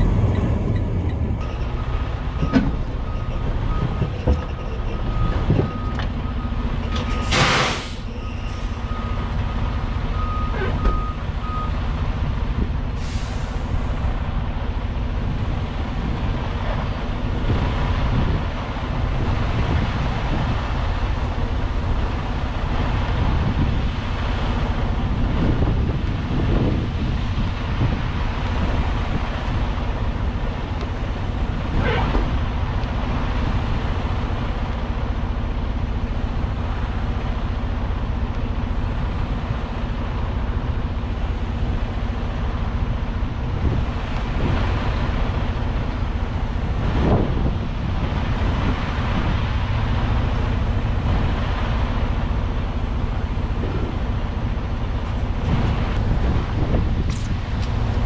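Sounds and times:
brief air hiss: 0:07.2 - 0:08.7, 0:13.0 - 0:13.8.

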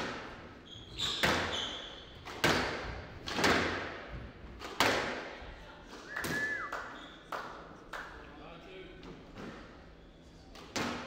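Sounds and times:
shoe squeal on wooden floor: 0:00.6 - 0:02.2, 0:06.0 - 0:07.3
squash ball thwacks: 0:02.3 - 0:03.9.

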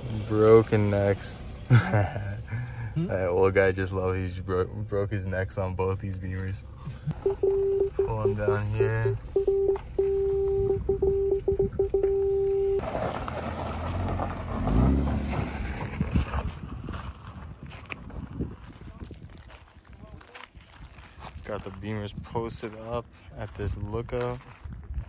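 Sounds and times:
car engine: 0:00.0 - 0:17.2
tyres on gravel: 0:00.0 - 0:25.0
parking sensor beeping: 0:07.1 - 0:12.8.

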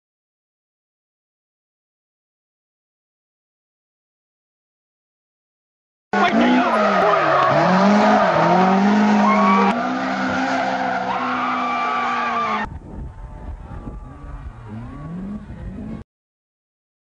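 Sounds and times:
car engine revving: 0:06.2 - 0:12.7, 0:13.4 - 0:16.0
tyres squealing: 0:06.2 - 0:12.7.

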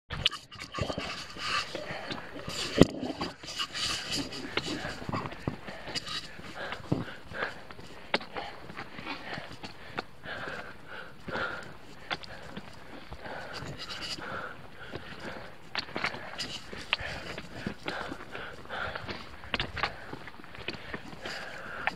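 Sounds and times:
camera pole knocking and rubbing: 0:00.3 - 0:06.3
person breathing: 0:00.8 - 0:21.9.

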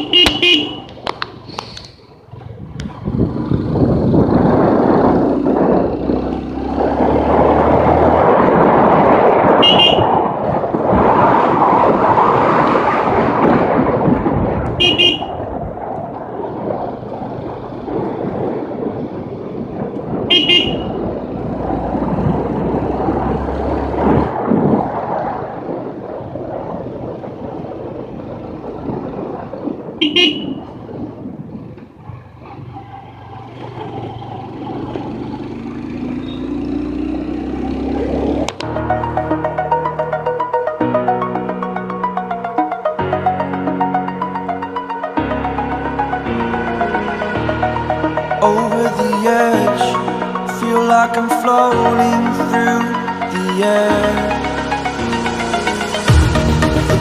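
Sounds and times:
vehicle horn beeps: 0:00.0 - 0:01.0, 0:09.6 - 0:10.1, 0:14.8 - 0:15.4, 0:20.3 - 0:21.0, 0:30.0 - 0:30.7, 0:36.2 - 0:36.5
wind and road rush: 0:00.0 - 0:57.0.

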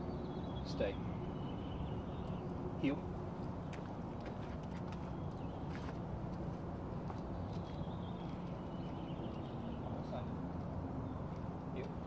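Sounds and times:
footsteps on asphalt: 0:03.4 - 0:09.5.

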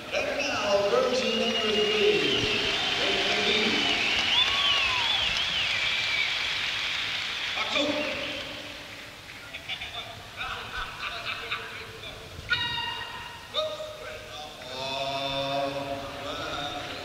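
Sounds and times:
high sliding pitches and voices: 0:00.0 - 0:05.0
crowd noise: 0:00.0 - 0:17.0.

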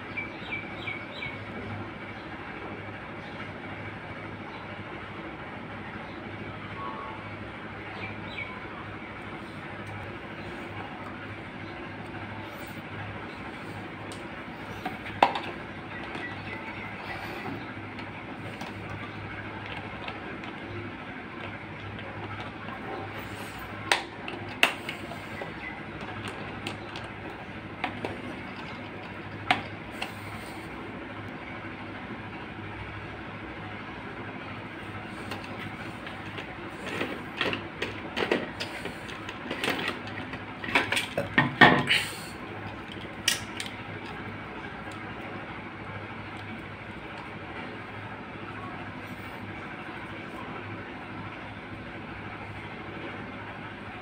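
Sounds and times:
steady background noise: 0:00.0 - 0:54.0.

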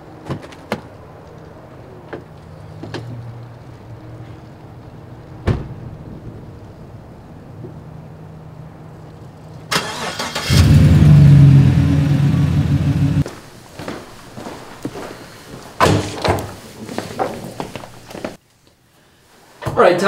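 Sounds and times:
truck engine cranking and running: 0:09.7 - 0:13.2.

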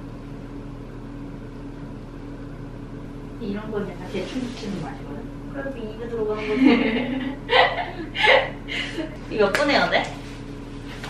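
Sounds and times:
room tone hum: 0:00.0 - 0:11.0.

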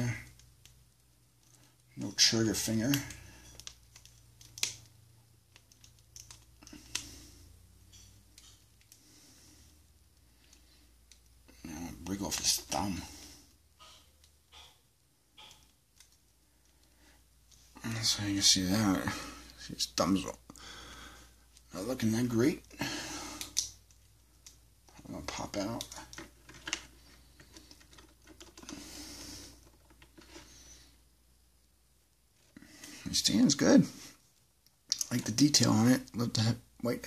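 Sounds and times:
faint plastic handling sounds: 0:00.0 - 0:31.1.

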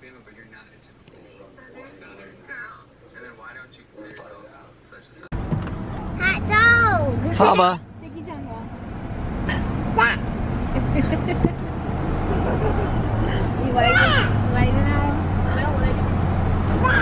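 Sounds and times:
vehicle road and engine noise: 0:05.2 - 0:17.0
voices calling out: 0:06.0 - 0:08.8, 0:09.4 - 0:17.0.

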